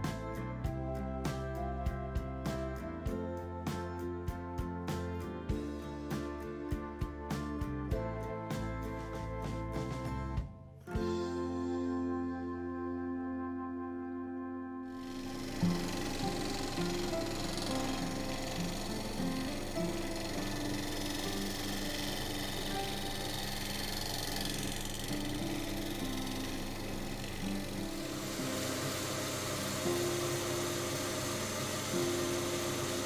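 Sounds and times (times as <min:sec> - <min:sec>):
background music: 0:00.0 - 0:33.0
wood lathe cutting bowl: 0:15.0 - 0:33.0.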